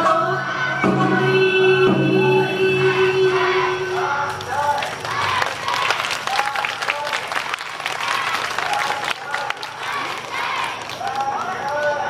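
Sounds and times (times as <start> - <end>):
voices calling out: 2.8 - 12.0
audience clapping: 4.3 - 12.0.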